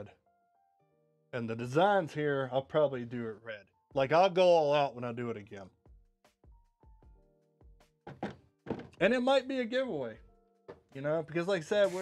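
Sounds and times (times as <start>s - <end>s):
soft background music: 0.0s - 12.0s
plastic hammer knocking on desk: 8.1s - 9.0s.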